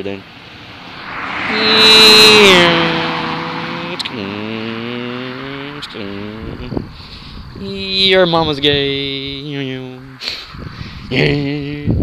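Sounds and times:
long droning tones: 0:00.0 - 0:06.8, 0:07.6 - 0:12.0
car passing by: 0:00.0 - 0:07.5, 0:08.8 - 0:11.3.

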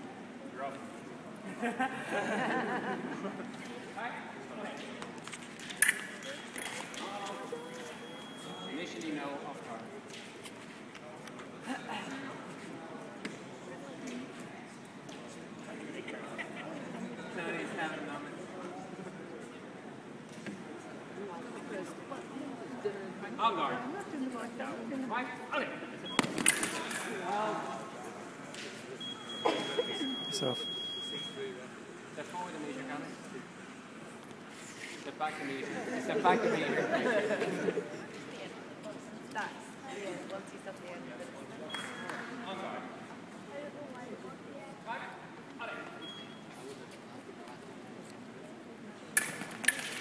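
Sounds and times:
sharp clack of foils: 0:49.2 - 0:50.0.

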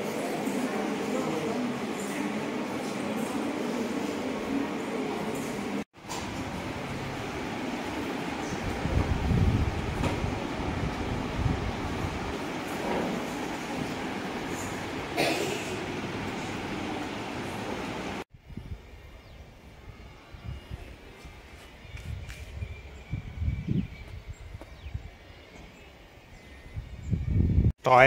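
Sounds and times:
rushing room noise: 0:00.0 - 0:18.3.

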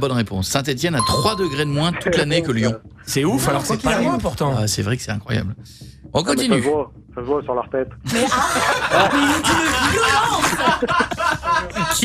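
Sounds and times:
people laughing: 0:08.1 - 0:12.0.

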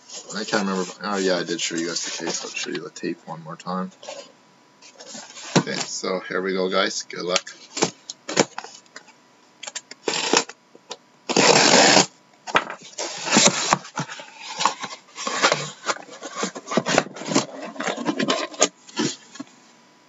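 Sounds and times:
card boxes scraping and knocking: 0:00.0 - 0:02.8, 0:04.0 - 0:06.0, 0:11.3 - 0:19.5
cardboard flaps folding: 0:04.9 - 0:06.0, 0:11.3 - 0:19.5
packing tape cut and pulled: 0:09.6 - 0:10.6, 0:11.3 - 0:12.1, 0:13.0 - 0:19.3.

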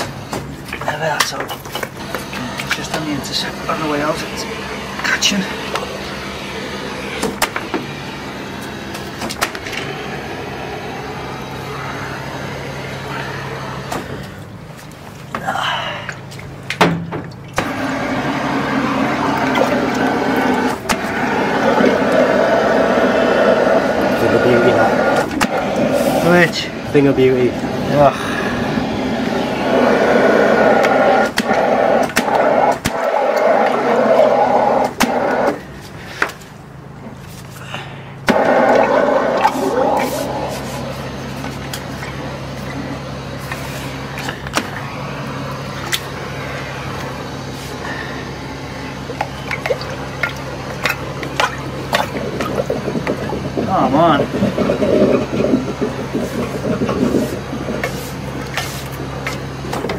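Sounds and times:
drain jetter engine hum: 0:00.0 - 0:59.9
water rushing: 0:17.4 - 0:35.4, 0:38.3 - 0:42.9, 0:48.5 - 0:59.7
indistinct voices: 0:18.7 - 0:35.5, 0:37.6 - 0:59.2.

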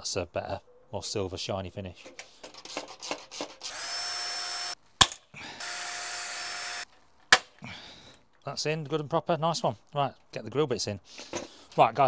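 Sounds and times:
cordless drill whining: 0:03.4 - 0:04.8, 0:05.5 - 0:06.9.

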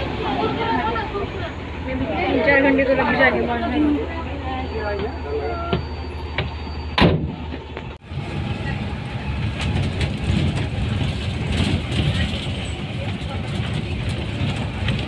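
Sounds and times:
bus engine and road rumble: 0:00.0 - 0:15.0.

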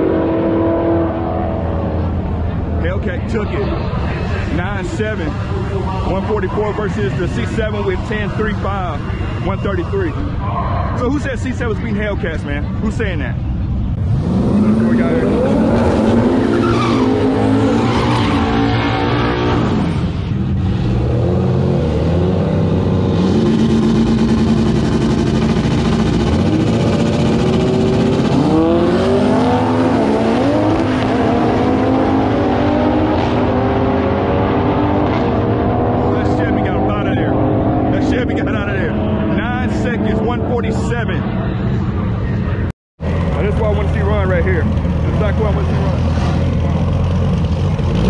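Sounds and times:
race car engines revving: 0:00.0 - 0:48.0.

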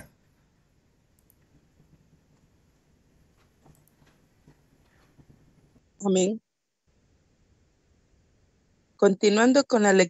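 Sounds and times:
faint clicks: 0:01.1 - 0:02.5, 0:03.3 - 0:05.5.

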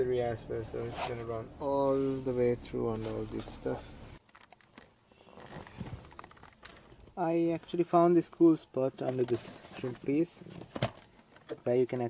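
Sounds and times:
clicks and rustles of handling trim: 0:04.2 - 0:07.9, 0:08.8 - 0:12.0.

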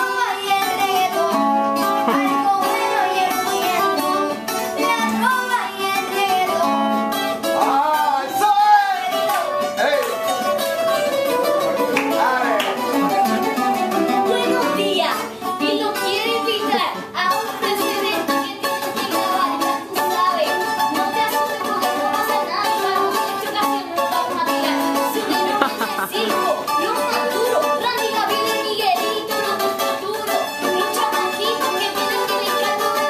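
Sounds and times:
acoustic guitar strumming: 0:00.0 - 0:33.0
child's voice: 0:01.9 - 0:04.0, 0:04.8 - 0:06.8, 0:14.1 - 0:33.0.

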